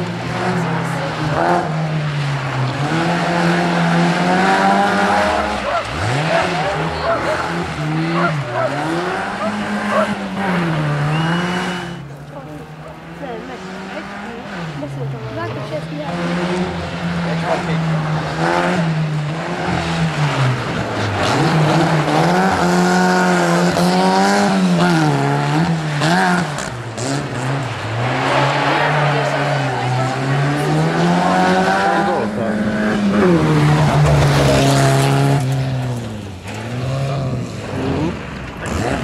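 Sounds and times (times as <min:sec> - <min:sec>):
rally car engine revving: 0:00.0 - 0:39.0.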